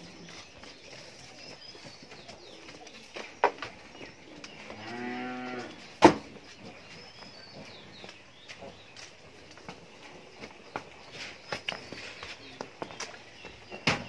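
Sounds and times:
cow mooing: 4.8 - 5.7.

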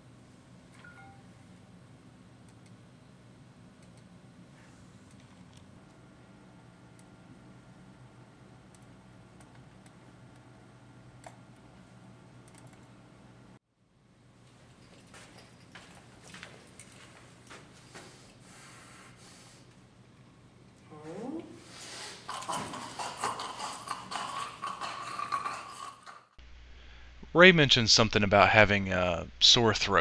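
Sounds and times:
low room hum: 0.0 - 30.0
computer clicks: 12.4 - 12.8.

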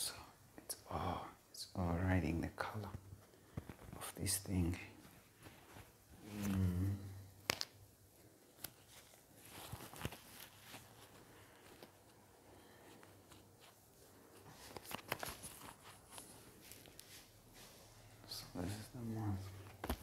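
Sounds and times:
rustling of mask and paper wrapper: 2.6 - 20.0
low voiced hum: 6.2 - 7.3.

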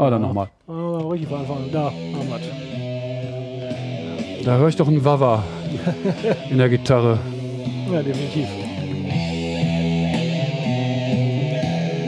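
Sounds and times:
hard rock music: 1.0 - 12.0
wah-wah electric guitar: 1.0 - 12.0.

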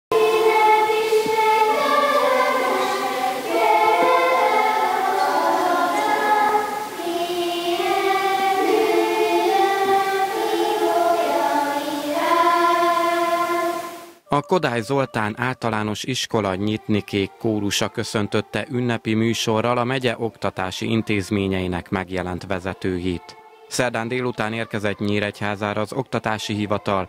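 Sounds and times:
children's choir singing: 0.1 - 27.0.

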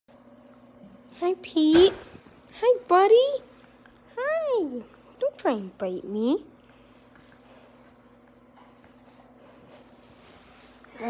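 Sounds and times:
steady low hum: 0.1 - 11.0
hand rubbing dog fur: 7.5 - 11.0.

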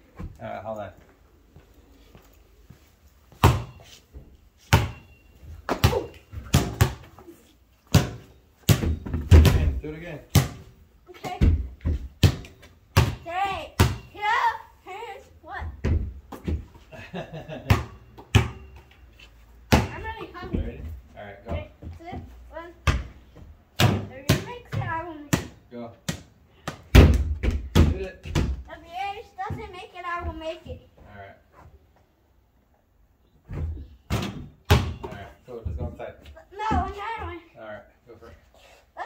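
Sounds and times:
basketball bouncing on concrete: 3.3 - 3.8, 4.7 - 5.0, 5.7 - 7.1, 7.9 - 14.1, 17.6 - 18.8, 19.7 - 20.8, 21.4 - 28.6.

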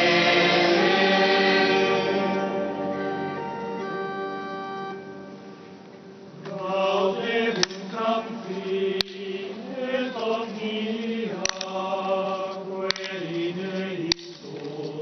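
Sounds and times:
choir singing chant: 0.0 - 3.5, 6.4 - 15.0.

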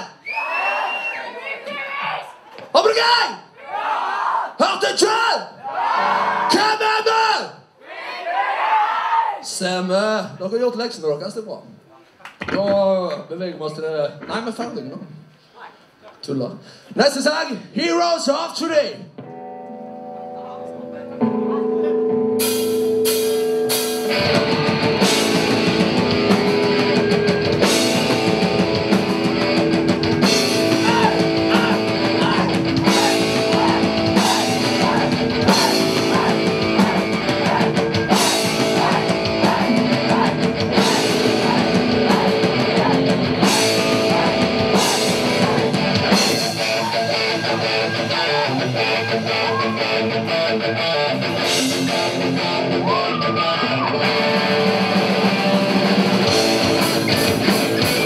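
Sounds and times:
rock band playing: 5.9 - 6.7, 19.2 - 58.0
held guitar chords: 19.2 - 58.0.

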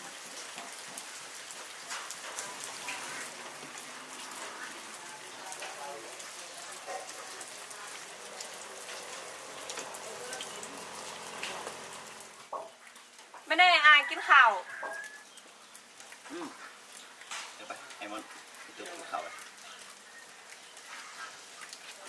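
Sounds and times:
steady patter of rain: 0.0 - 22.0.

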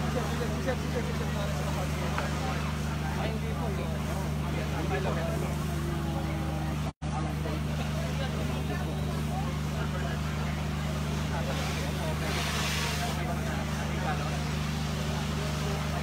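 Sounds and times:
engine droning: 0.0 - 16.0.

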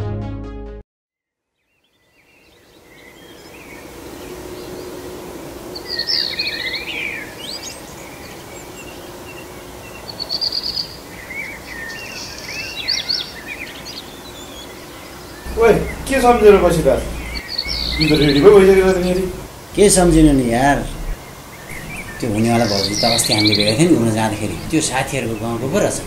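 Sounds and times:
steady background hiss: 2.1 - 26.0
birds chirping and whistling: 15.3 - 26.0.

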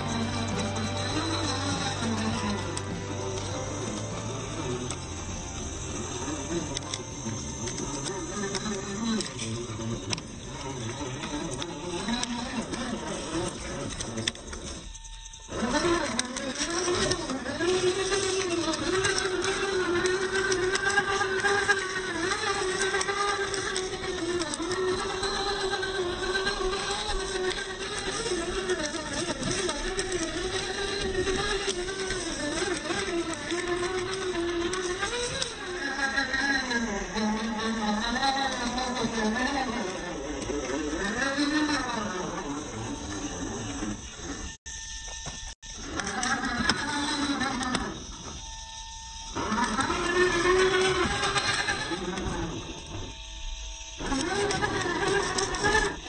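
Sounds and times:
electric motor and gears whining: 0.0 - 56.0.

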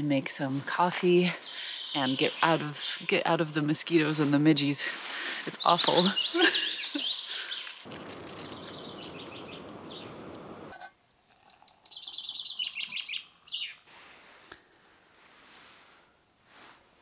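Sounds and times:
songbirds chirping: 0.1 - 13.9
person laughing: 6.3 - 7.1
gas stove burner hissing: 8.1 - 10.8.

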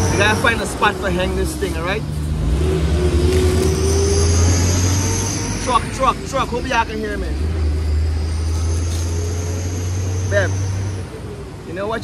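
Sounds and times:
high whine: 0.0 - 11.8
truck engine rumbling: 0.0 - 12.0.

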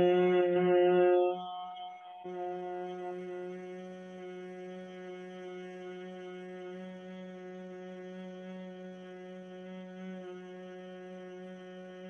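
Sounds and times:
woman humming low note: 2.3 - 12.0.

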